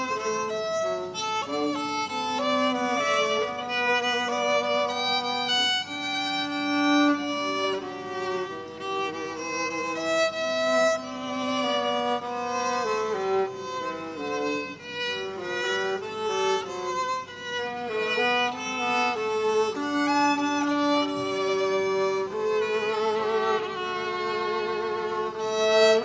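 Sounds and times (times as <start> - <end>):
violin duet: 0.0 - 26.0.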